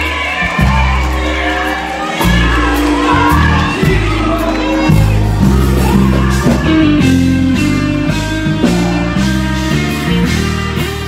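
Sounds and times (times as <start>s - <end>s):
people singing: 0.0s - 9.7s
crowd cheering: 0.0s - 11.0s
gospel band music: 0.0s - 11.0s
held bass notes: 0.0s - 11.0s.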